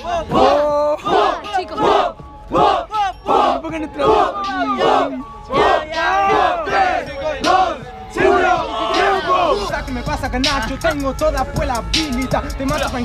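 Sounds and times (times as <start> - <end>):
crowd of men chanting: 0.0 - 10.0.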